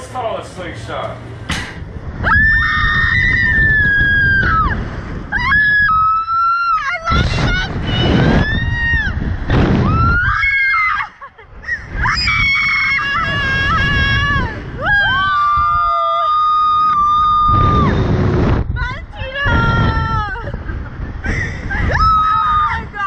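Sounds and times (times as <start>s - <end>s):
wind rushing over microphone: 1.3s - 23.0s
women screaming: 2.2s - 7.6s, 9.9s - 18.0s, 21.7s - 23.0s.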